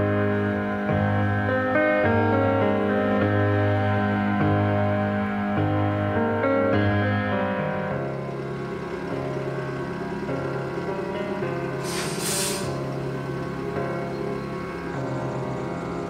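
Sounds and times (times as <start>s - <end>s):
music playing: 0.0s - 16.0s
diesel railbus idling: 6.0s - 16.0s
air release hiss: 11.8s - 12.8s.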